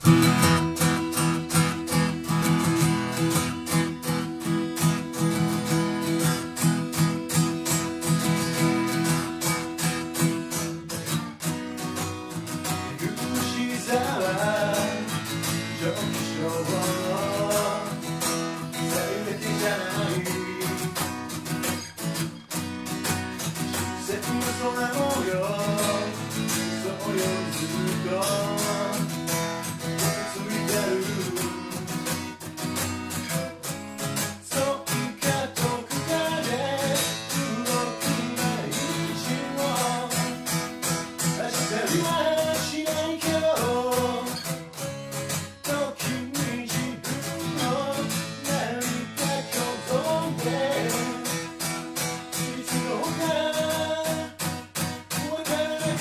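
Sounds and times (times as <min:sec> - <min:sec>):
acoustic guitar strumming: 0:00.0 - 0:56.0
man singing: 0:12.6 - 0:21.4, 0:23.5 - 0:32.1, 0:34.2 - 0:44.7, 0:45.3 - 0:56.0.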